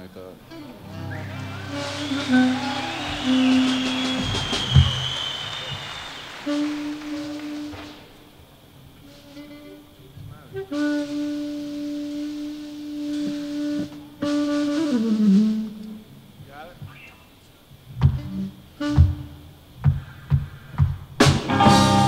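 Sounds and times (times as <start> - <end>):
wind instrument held notes: 0.0 - 16.1.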